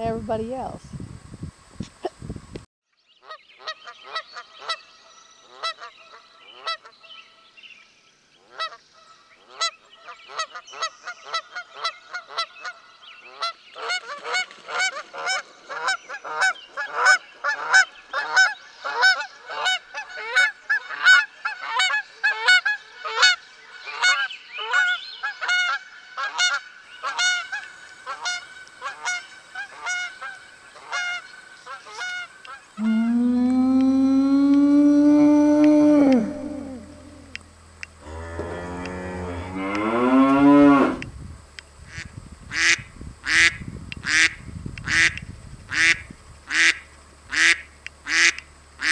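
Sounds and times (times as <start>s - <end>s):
geese honking: 8.4s - 8.8s, 9.5s - 33.3s, 44.1s - 48.9s
loud long animal call: 32.8s - 37.4s, 38.0s - 41.1s.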